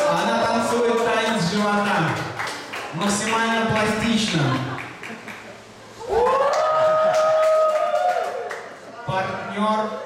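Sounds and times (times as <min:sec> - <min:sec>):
onlookers going ooh: 0:06.0 - 0:08.5.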